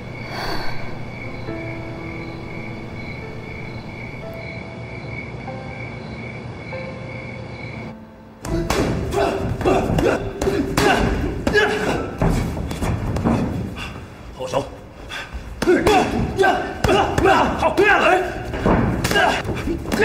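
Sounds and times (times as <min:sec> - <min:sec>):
insects chirping: 0:00.0 - 0:20.0
voices: 0:14.4 - 0:20.0.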